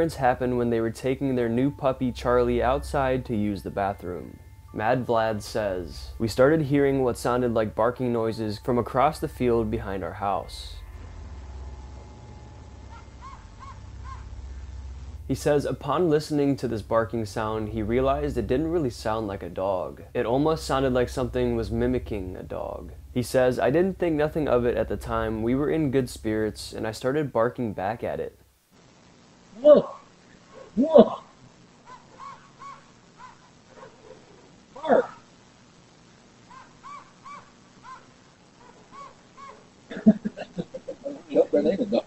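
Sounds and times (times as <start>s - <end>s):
steady low hum: 0.0s - 30.9s
faint animal barking calls: 12.8s - 14.5s, 29.6s - 35.4s, 36.4s - 39.8s.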